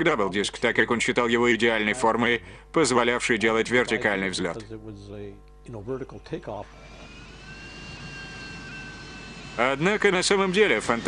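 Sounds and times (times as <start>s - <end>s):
man speaking: 0.0s - 6.7s
jet engine with turbine whine: 6.2s - 11.0s.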